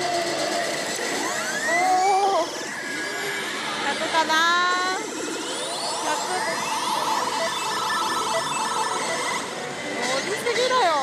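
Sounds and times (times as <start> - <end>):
din of gaming hall: 0.0 - 11.0
rapid electronic beeps and jingle: 2.7 - 11.0.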